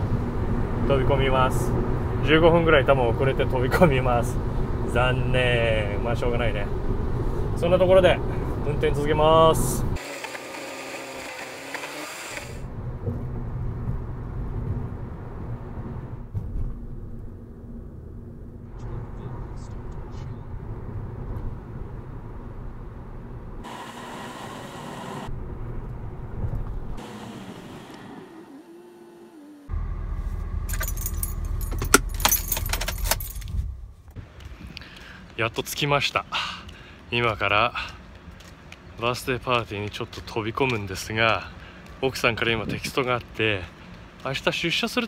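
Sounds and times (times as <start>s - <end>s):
car road noise rumble: 0.0s - 10.0s, 12.2s - 45.0s
car engine idling: 29.6s - 35.3s
car keys jangling: 30.6s - 33.7s.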